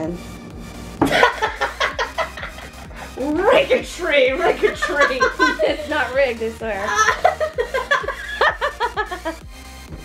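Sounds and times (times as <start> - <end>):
background music: 0.0 - 10.0
person laughing hard: 1.0 - 3.1, 6.9 - 9.4.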